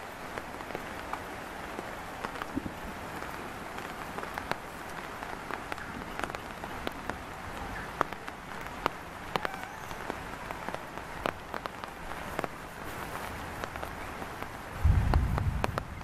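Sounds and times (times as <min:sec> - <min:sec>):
steady outdoor hiss: 0:00.0 - 0:16.0
sharp ticks and crackles: 0:00.1 - 0:16.0.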